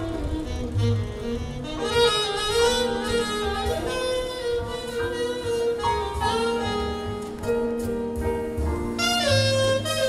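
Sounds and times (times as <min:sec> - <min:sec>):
saxophone long notes: 0:00.0 - 0:07.8, 0:08.9 - 0:10.0
double bass: 0:00.0 - 0:10.0
piano: 0:00.0 - 0:10.0.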